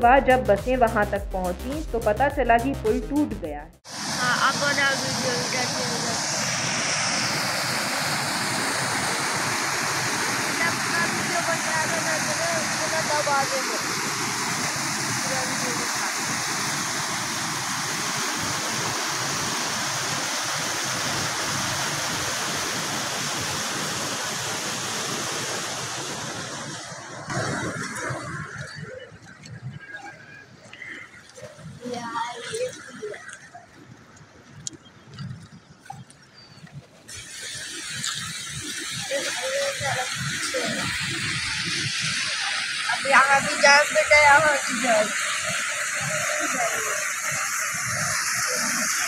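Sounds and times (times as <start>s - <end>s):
floodwater rushing through pipes: 3.9s - 49.0s.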